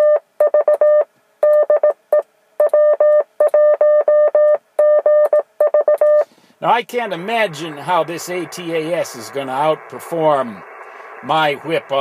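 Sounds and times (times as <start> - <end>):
morse code beeps: 0.0 - 2.0, 2.6 - 6.3.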